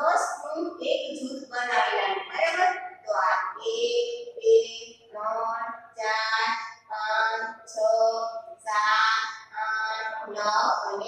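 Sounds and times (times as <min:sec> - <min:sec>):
woman chanting sing-song: 0:01.6 - 0:11.0.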